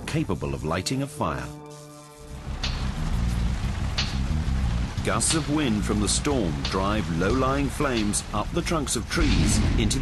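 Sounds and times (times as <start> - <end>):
low background music: 0.0 - 10.0
fire crackling: 1.8 - 10.0.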